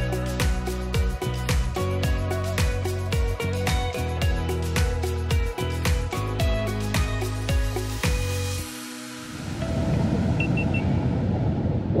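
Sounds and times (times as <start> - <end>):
short high beeps: 10.4 - 10.9.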